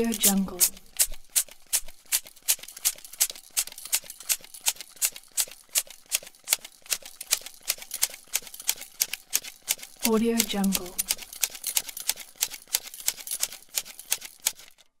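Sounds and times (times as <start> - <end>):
bicycle pump hissing: 0.0 - 14.6.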